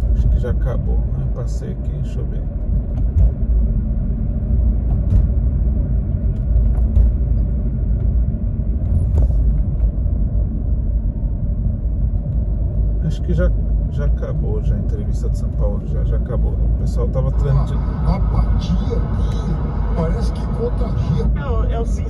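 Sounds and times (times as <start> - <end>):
car tyres and engine rumble: 0.0 - 22.0.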